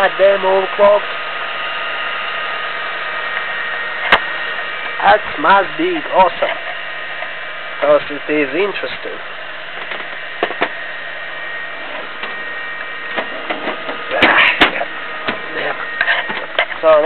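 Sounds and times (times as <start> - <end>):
computer fans whirring: 0.0 - 17.0.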